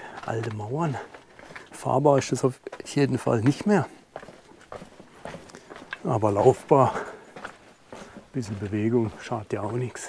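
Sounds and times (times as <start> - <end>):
footsteps on dirt path: 0.0 - 10.0.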